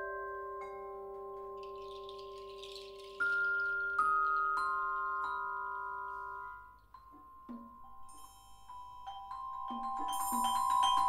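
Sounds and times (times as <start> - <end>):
metal mallet instrument notes: 0.0 - 11.0
shimmering metallic chime rattle: 1.4 - 7.2, 8.0 - 11.0.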